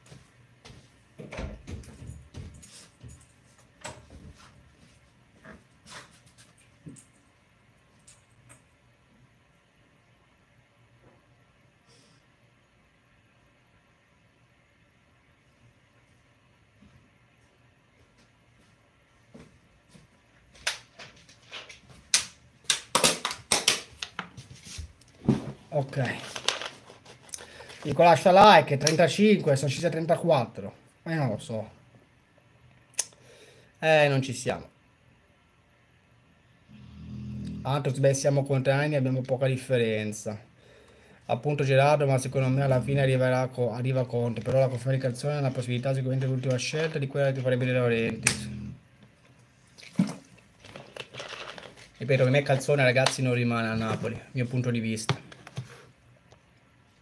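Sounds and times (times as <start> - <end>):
footsteps on wooden floor: 0.0 - 3.3
plastic water bottle crinkling: 49.8 - 52.7.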